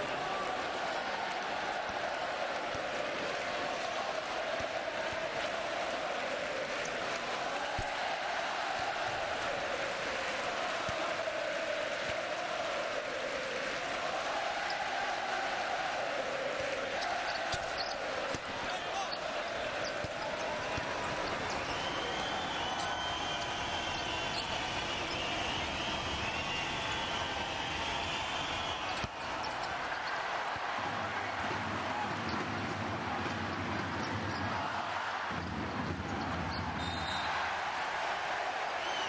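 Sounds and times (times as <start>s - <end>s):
crowd chanting: 0.0s - 39.0s
basketball bouncing on court: 28.9s - 37.2s.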